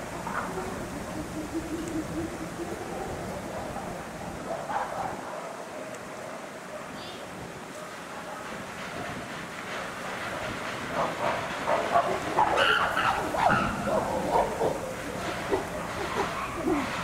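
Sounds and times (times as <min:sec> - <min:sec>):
chimpanzees calling: 0:00.0 - 0:06.5, 0:11.0 - 0:17.0.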